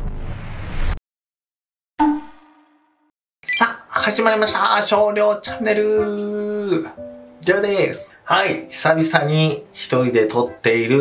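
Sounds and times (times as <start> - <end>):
man talking: 3.5 - 11.0
guitar background music: 3.9 - 11.0.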